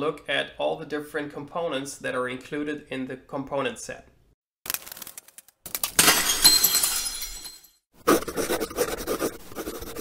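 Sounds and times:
glass breaking: 4.7s - 7.8s.

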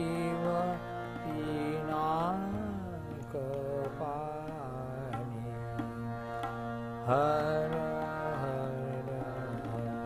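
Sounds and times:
elderly man singing: 0.0s - 10.0s
harmonium chords: 0.0s - 10.0s.

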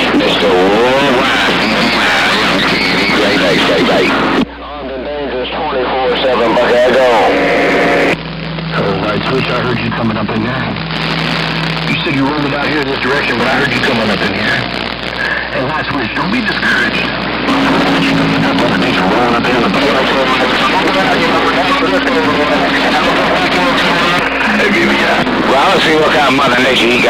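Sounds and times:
garbled radio voices: 0.0s - 27.0s
radio static: 0.0s - 27.0s
steady low hum: 0.0s - 27.0s.

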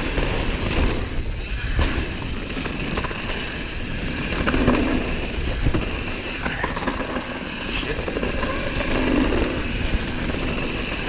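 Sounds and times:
bike rattling over bumps: 0.0s - 11.0s
bike tyres on dirt: 0.0s - 11.0s
wind on microphone: 0.0s - 11.0s.

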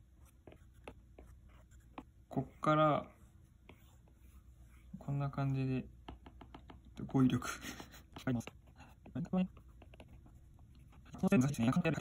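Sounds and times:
stylus tapping on glass screen: 6.0s - 7.0s.

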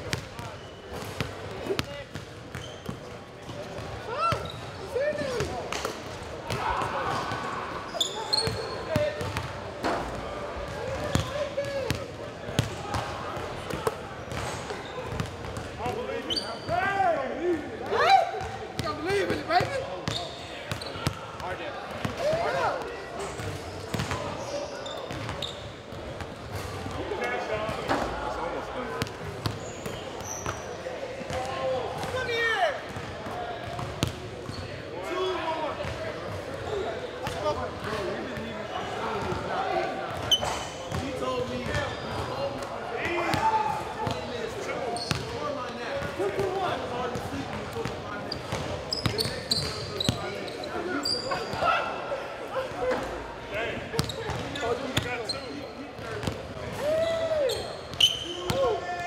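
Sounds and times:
sneakers squeaking on hardwood: 2.5s - 3.1s, 3.8s - 4.8s, 7.9s - 9.4s, 16.2s - 16.8s, 20.0s - 21.2s, 23.3s - 25.9s, 29.4s - 30.8s, 40.2s - 41.0s, 44.9s - 45.4s, 48.3s - 51.6s, 54.0s - 55.6s, 57.5s - 58.7s.

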